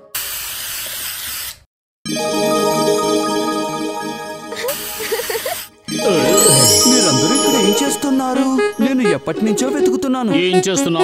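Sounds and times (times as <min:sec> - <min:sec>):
aerosol spray can hiss: 0:00.2 - 0:01.6.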